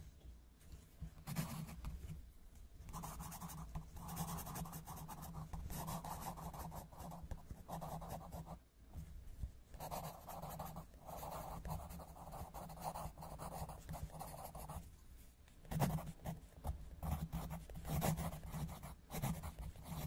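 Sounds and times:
coloured pencil scratching on paper: 1.2s - 1.8s, 2.9s - 8.6s, 9.7s - 14.8s, 15.7s - 20.0s.

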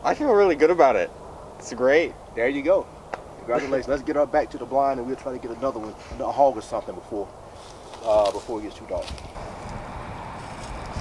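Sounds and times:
vehicle driving slowly: 9.0s - 11.0s.

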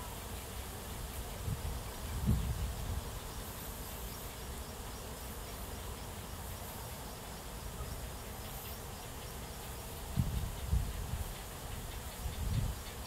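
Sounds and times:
insects buzzing: 0.0s - 13.0s.

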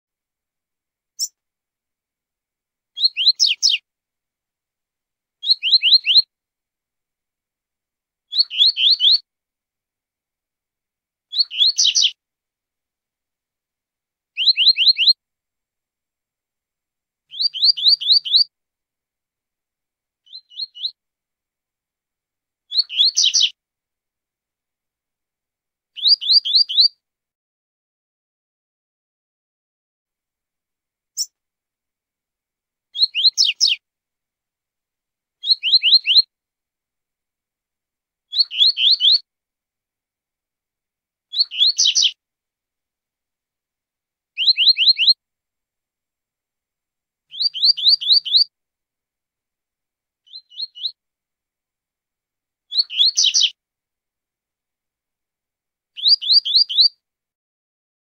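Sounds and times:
bird singing: 3.0s - 3.8s, 5.4s - 6.3s, 8.3s - 9.2s, 11.3s - 12.2s, 14.4s - 15.2s, 17.3s - 18.5s, 20.2s - 21.0s, 22.7s - 23.6s, 26.0s - 26.9s, 33.0s - 33.8s, 35.4s - 36.3s, 38.3s - 39.2s, 41.3s - 42.2s, 44.4s - 45.2s, 47.3s - 48.5s, 50.3s - 51.0s, 52.7s - 53.6s, 56.0s - 56.9s.

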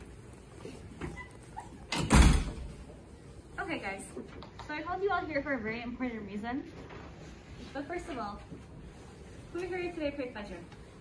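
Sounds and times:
door shutting with heavy thud: 1.9s - 2.7s.

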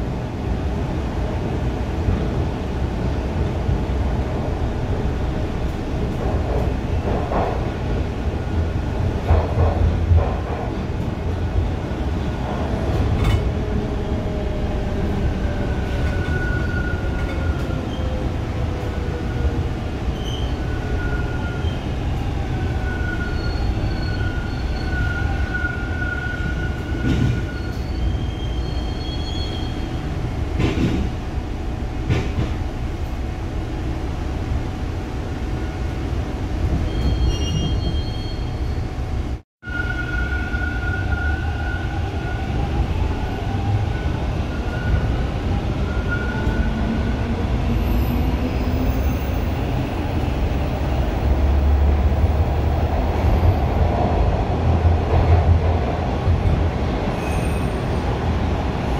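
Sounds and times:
wheels rumbling on track: 0.0s - 39.4s
high-pitched wheel squeals: 22.8s - 30.0s, 36.9s - 38.9s.

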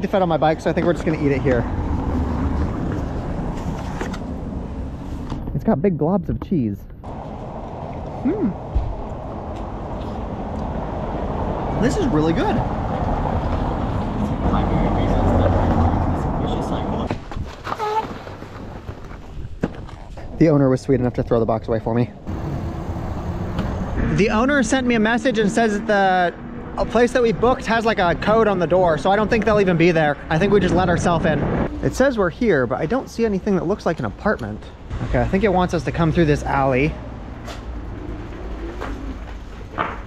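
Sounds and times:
vehicle driving on cobblestones: 0.0s - 5.5s, 7.0s - 20.0s, 22.1s - 40.0s
street noise: 0.0s - 40.0s
wind rumble on microphone: 7.1s - 24.9s, 26.6s - 32.0s
voice murmuring: 8.1s - 8.6s.

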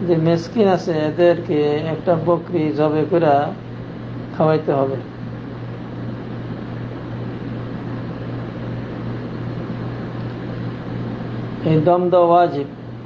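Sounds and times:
low hum: 0.0s - 13.0s.

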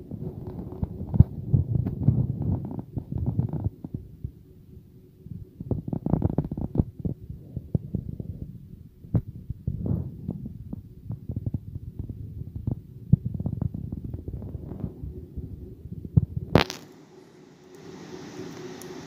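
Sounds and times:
microphone handling thumps and rumbling: 0.0s - 4.4s, 5.6s - 16.8s.

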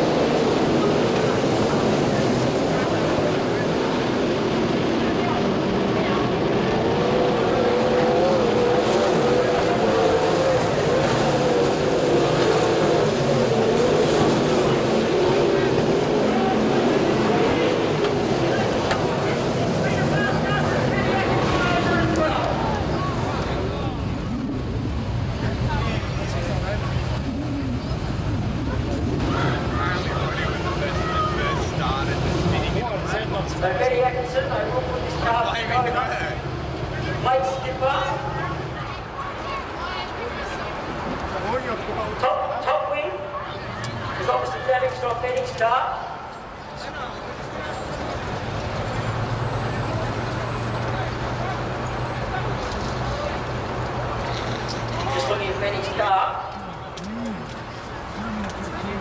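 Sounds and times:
racing car engines droning: 0.0s - 59.0s.

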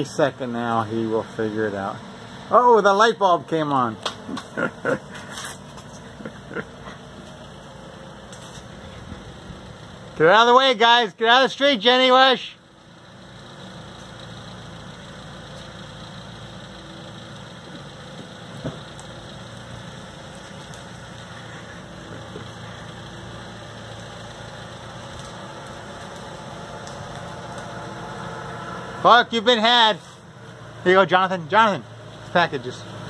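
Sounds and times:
truck engine humming: 0.0s - 33.0s.

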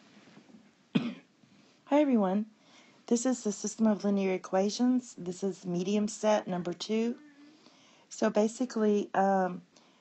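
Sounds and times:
person coughing: 1.0s - 1.3s
person speaking: 3.1s - 9.6s.

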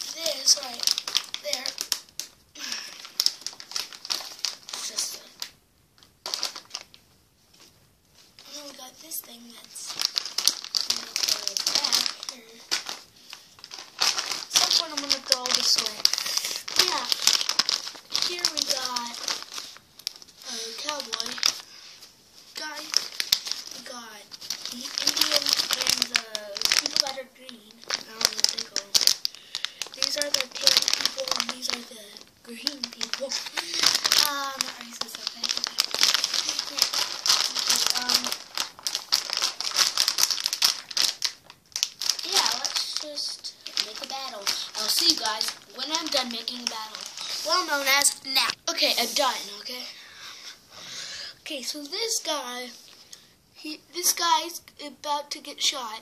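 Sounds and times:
plastic packaging crinkling: 0.0s - 50.0s
child vocalizing: 2.6s - 2.9s, 14.6s - 17.2s, 20.4s - 21.4s, 32.8s - 35.8s.

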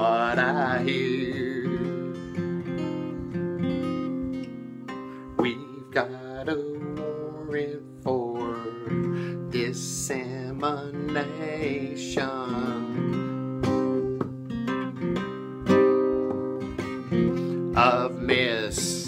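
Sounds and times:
man singing: 0.0s - 2.5s, 5.3s - 13.6s, 17.3s - 19.0s
acoustic guitar strumming: 0.0s - 19.0s.

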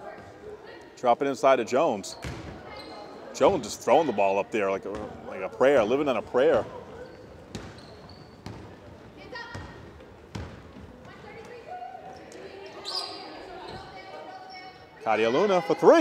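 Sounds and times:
shoe squeak: 2.2s - 3.2s, 6.7s - 8.8s, 12.2s - 14.9s
basketball bouncing on hardwood: 7.5s - 7.8s, 8.4s - 8.7s, 9.3s - 11.4s.

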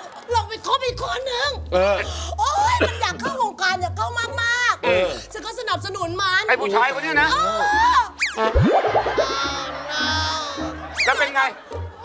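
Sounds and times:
fast falling glide: 8.6s - 9.4s
quick rising glide: 8.6s - 9.4s.

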